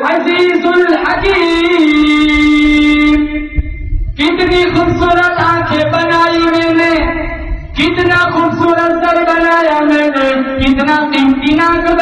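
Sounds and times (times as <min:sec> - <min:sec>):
low knock: 0:01.1 - 0:09.6.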